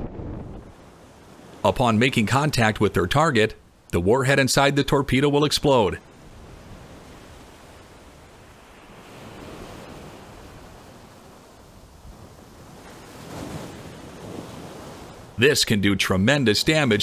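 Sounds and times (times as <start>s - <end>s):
wind rushing: 0.0s - 0.8s
sea rushing: 0.0s - 17.0s.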